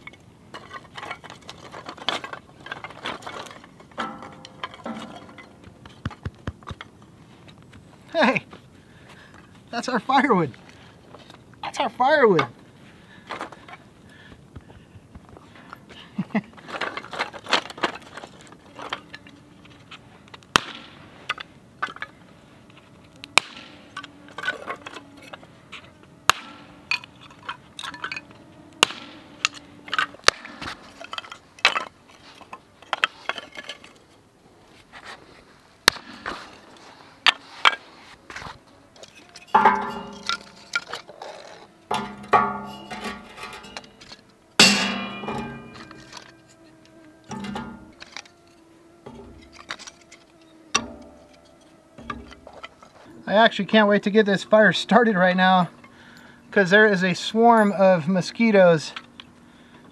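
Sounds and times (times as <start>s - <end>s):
wooden sticks clacking together: 0.0s - 6.9s, 39.0s - 46.3s
sticks clattering into metal fire pit: 0.0s - 7.6s, 16.3s - 34.1s, 35.8s - 48.4s, 49.0s - 59.2s.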